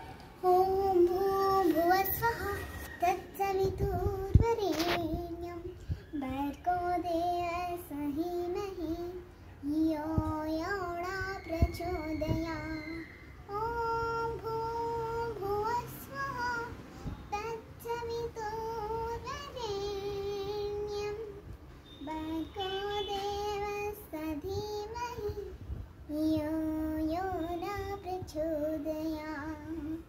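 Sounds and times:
child chanting a sung melody: 0.3s - 30.0s.

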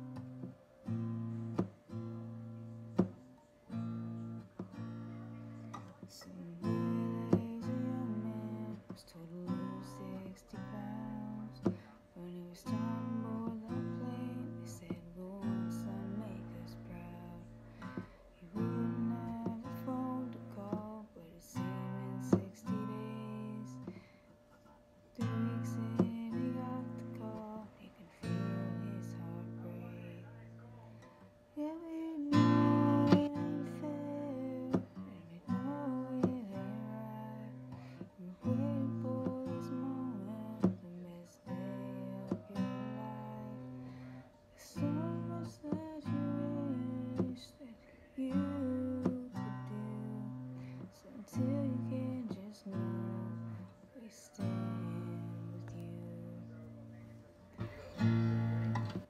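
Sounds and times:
acoustic guitar strummed: 0.0s - 24.0s, 25.2s - 47.6s, 48.2s - 53.8s, 54.4s - 59.0s.

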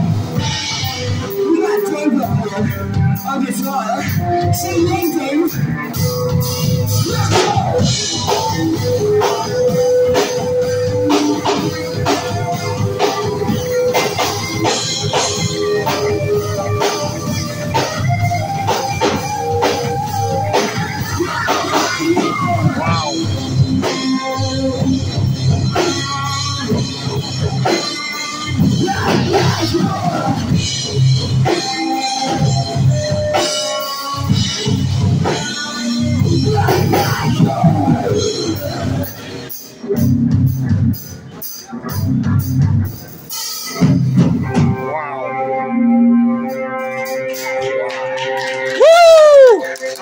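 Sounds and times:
live rock band playing: 0.0s - 50.0s.

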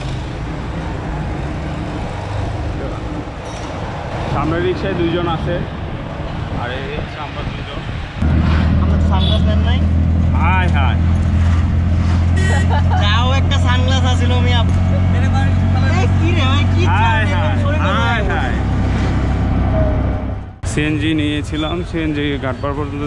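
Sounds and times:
auto-rickshaw engine humming: 0.0s - 23.0s.

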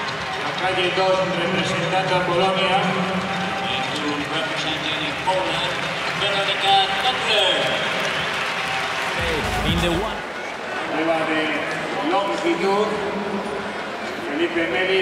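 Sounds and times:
applause: 0.0s - 10.6s
stadium crowd noise: 0.0s - 15.0s
man speaking: 9.2s - 10.3s.

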